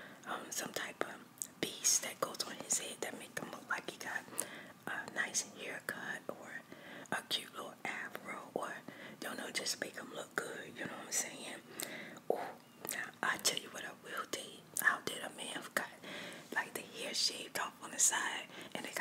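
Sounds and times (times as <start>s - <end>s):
woman whispering: 0.3s - 19.0s
small mouth clicks: 11.7s - 13.2s.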